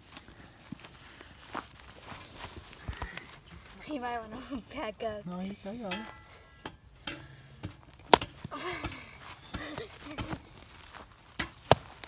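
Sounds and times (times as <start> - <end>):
footsteps on dry grass: 0.0 - 12.0.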